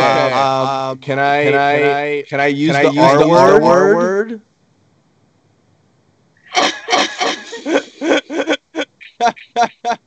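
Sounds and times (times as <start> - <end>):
person laughing: 6.6 - 10.0.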